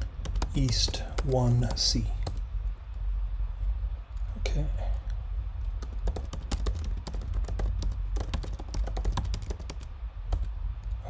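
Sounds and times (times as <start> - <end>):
keyboard typing: 0.0 - 2.4, 5.6 - 10.5
steady low hum: 0.0 - 11.0.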